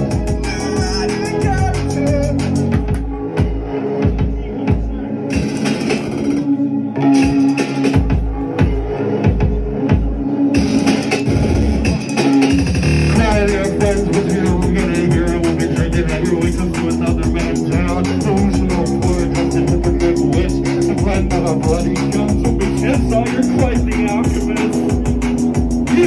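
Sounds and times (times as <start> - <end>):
live band playing loud music: 0.0 - 3.0, 5.3 - 26.0.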